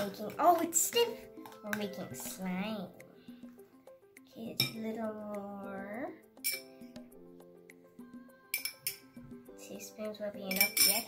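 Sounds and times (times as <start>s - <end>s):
soft background music: 0.0s - 11.0s
metal spoon clinking on glass: 6.4s - 6.7s, 8.5s - 9.1s, 10.5s - 11.0s.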